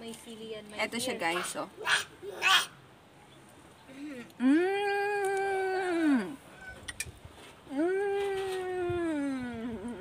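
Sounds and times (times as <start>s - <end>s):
woman humming mmm: 4.2s - 6.4s, 7.7s - 10.0s.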